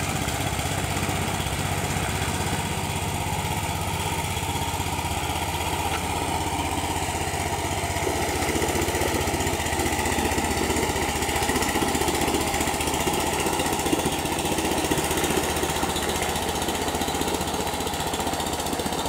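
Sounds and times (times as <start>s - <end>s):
small boat engine running: 0.0s - 19.0s.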